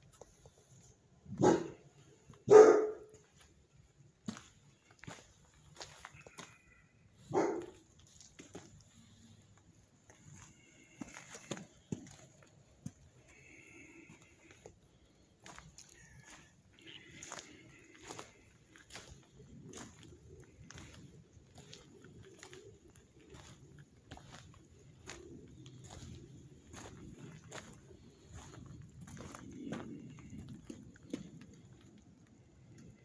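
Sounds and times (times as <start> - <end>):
dog barking: 1.4 - 1.8, 2.4 - 3.2, 7.3 - 7.8.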